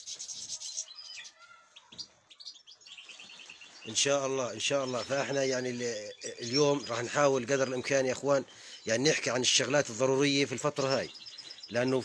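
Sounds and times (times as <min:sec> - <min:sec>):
finches twittering: 0:00.0 - 0:12.0.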